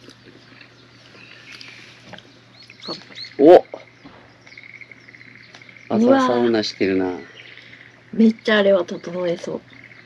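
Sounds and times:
low steady hum: 0:00.0 - 0:10.0
person speaking: 0:05.9 - 0:07.6.

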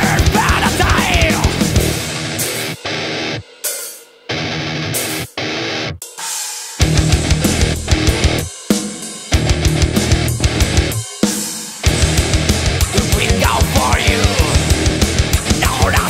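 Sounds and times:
thrash metal band playing: 0:00.0 - 0:16.0.

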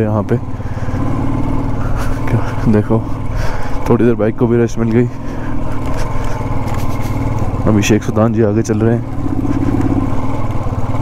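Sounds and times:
motorcycle engine running: 0:00.0 - 0:11.0
road and wind noise: 0:00.0 - 0:11.0.

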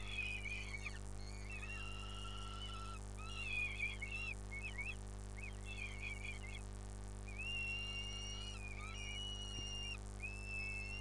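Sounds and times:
falcon chicks begging calls: 0:00.0 - 0:06.7, 0:07.3 - 0:11.0
electrical hum: 0:00.0 - 0:11.0.

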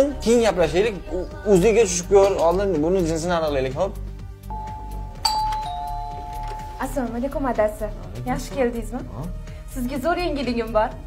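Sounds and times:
two-tone doorbell chime: 0:04.5 - 0:07.0.

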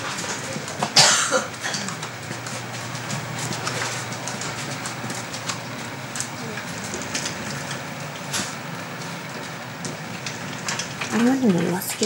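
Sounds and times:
faint clicks and rustles: 0:00.0 - 0:12.0.

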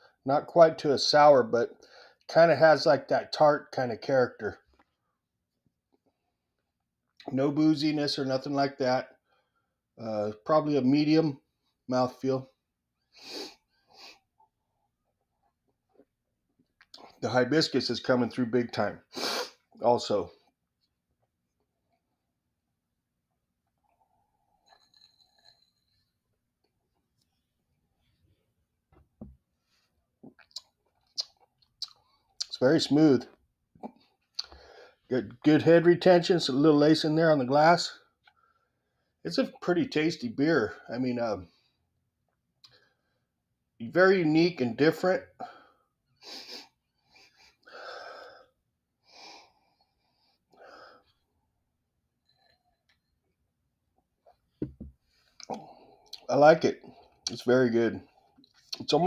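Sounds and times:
person sipping beer: 0:13.2 - 0:14.3, 0:23.7 - 0:26.2, 0:54.6 - 0:56.3
sip of beer from a glass: 0:23.8 - 0:26.2.

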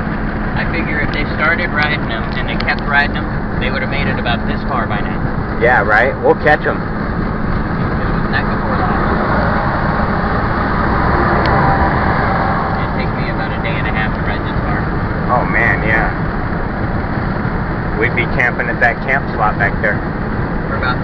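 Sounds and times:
road tyre and engine noise: 0:00.0 - 0:21.0.

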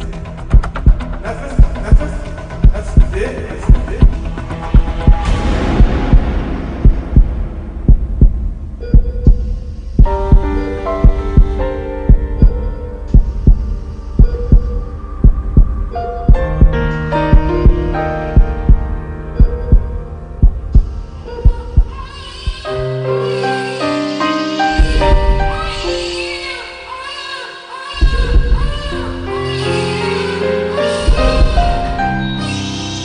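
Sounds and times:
dramatic orchestral score: 0:00.0 - 0:08.9
heartbeat thumps: 0:00.0 - 0:22.7, 0:24.8 - 0:25.8, 0:28.0 - 0:28.9, 0:31.1 - 0:32.0.

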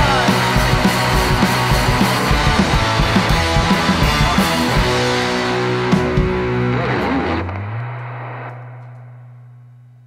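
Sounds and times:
rock band final chord: 0:00.0 - 0:09.4.

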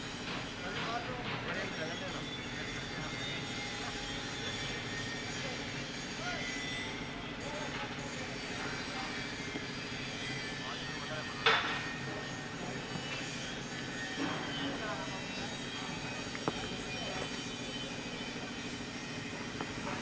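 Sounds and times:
steady outdoor hum: 0:00.0 - 0:20.0.

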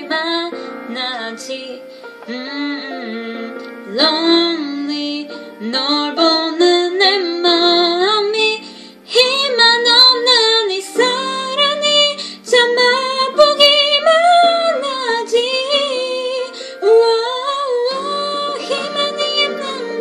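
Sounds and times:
woman singing pop ballad: 0:00.0 - 0:20.0.

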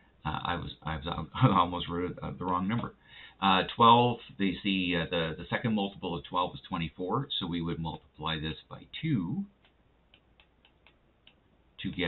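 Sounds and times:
man talking: 0:00.2 - 0:09.6, 0:11.8 - 0:12.0
stylus tapping a tablet: 0:09.6 - 0:11.5.

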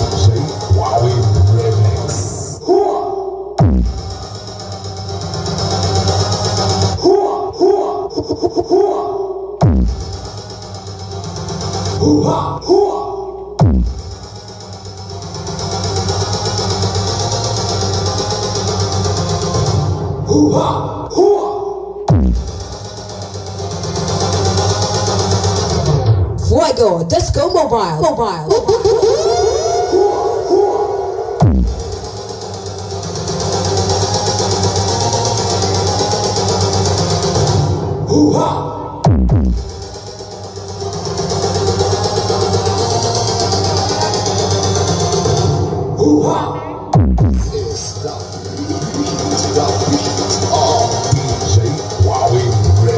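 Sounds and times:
deep bass: 0:00.0 - 0:02.6, 0:03.5 - 0:08.6, 0:09.6 - 0:21.2, 0:21.8 - 0:29.7, 0:31.4 - 0:52.9
fast repeating electronic pulse: 0:03.6 - 0:12.3, 0:13.5 - 0:20.0, 0:31.3 - 0:38.0, 0:39.0 - 0:45.8, 0:46.9 - 0:52.9.

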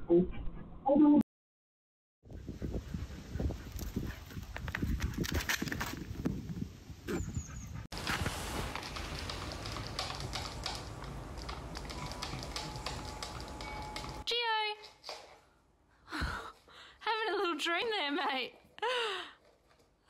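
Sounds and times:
hoofbeats on grass: 0:08.0 - 0:14.2.

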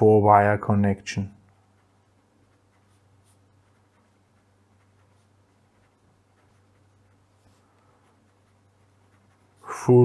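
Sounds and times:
felt-tip pen scratching on paper: 0:01.5 - 0:10.0.

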